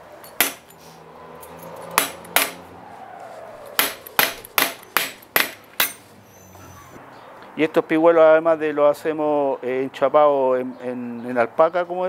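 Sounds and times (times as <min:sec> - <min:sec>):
hammer striking metal chisel: 0:00.2 - 0:00.8, 0:01.6 - 0:02.6, 0:03.8 - 0:06.1.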